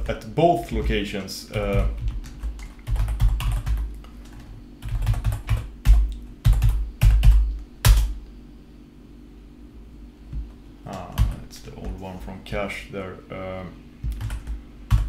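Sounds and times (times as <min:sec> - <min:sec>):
typing on computer keyboard: 0:01.5 - 0:08.1, 0:14.0 - 0:15.0.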